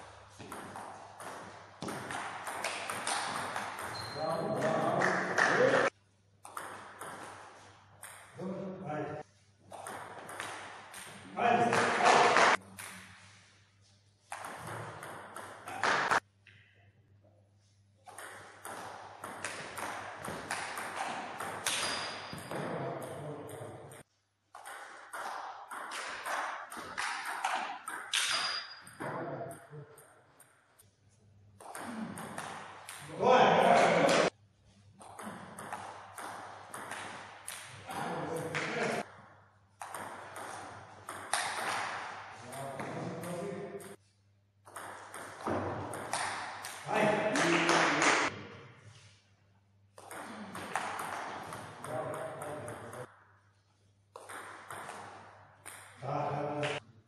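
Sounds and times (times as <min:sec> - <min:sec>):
ball bouncing on table: 0:44.7 - 0:46.8.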